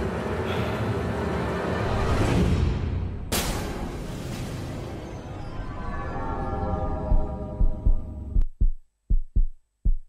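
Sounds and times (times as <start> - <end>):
music: 0.0 - 8.5
heartbeat thumps: 7.1 - 10.0.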